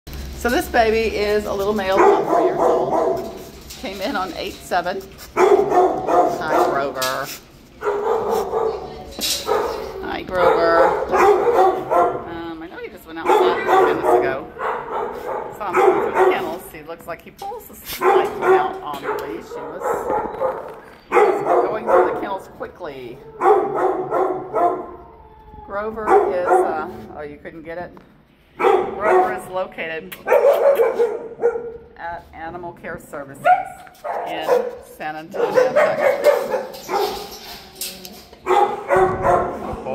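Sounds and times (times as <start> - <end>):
dogs barking: 1.8 - 3.5, 5.3 - 7.1, 7.8 - 12.5, 13.1 - 16.8, 17.9 - 22.6, 23.2 - 25.2, 26.0 - 27.0, 28.6 - 29.6, 30.2 - 31.9, 33.4 - 37.5, 38.4 - 39.9.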